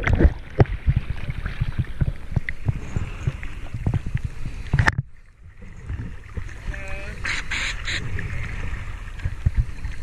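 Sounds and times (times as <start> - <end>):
water sloshing against camera: 0.0 - 10.0
water splashing: 0.0 - 10.0.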